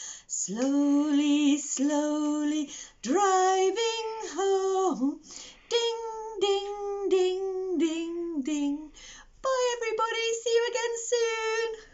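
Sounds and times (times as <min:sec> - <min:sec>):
breath: 0:00.0 - 0:00.3, 0:02.7 - 0:03.0, 0:05.2 - 0:05.7, 0:08.9 - 0:09.4
woman singing unaccompanied: 0:00.0 - 0:11.9.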